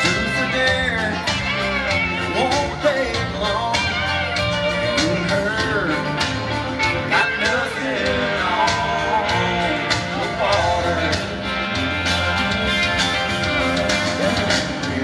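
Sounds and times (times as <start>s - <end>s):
live country band playing: 0.0s - 15.0s.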